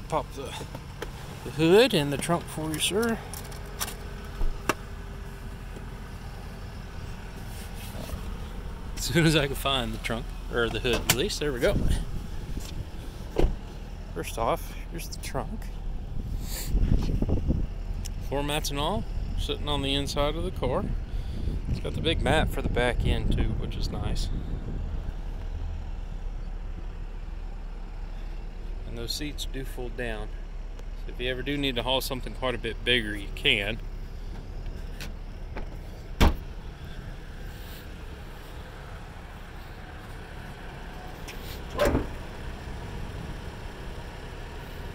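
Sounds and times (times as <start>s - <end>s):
car engine idling: 0.0s - 44.9s
short thump: 12.6s - 13.6s, 35.5s - 36.5s.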